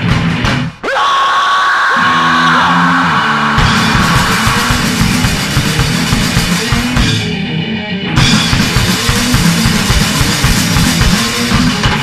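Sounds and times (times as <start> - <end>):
rock band playing: 0.0 - 0.8, 1.9 - 12.0.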